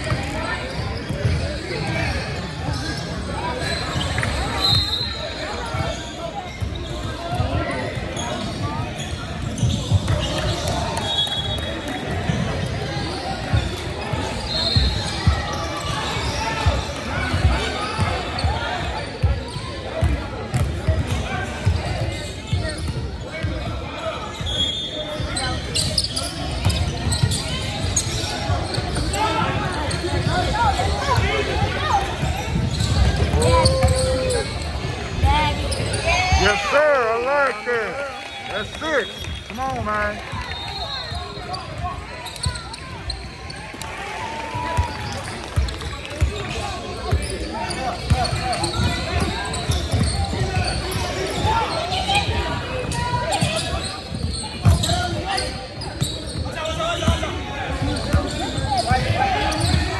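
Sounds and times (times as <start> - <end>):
people calling out: 33.3 - 34.6.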